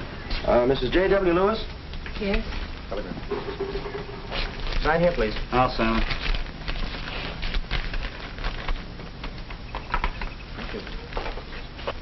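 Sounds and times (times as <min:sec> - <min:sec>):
steady low hum: 0:00.0 - 0:12.0
crackling surface noise: 0:02.4 - 0:12.0.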